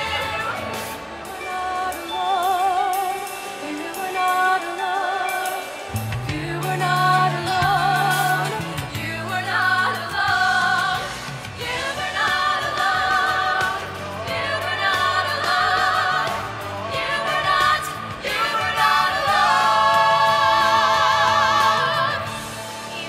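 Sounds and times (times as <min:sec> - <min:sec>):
vocal ensemble singing in harmony: 0:00.0 - 0:23.0.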